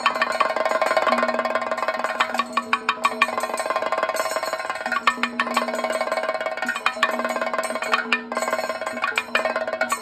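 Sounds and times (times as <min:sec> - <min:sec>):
rapid drum stick strokes: 0:00.0 - 0:10.0.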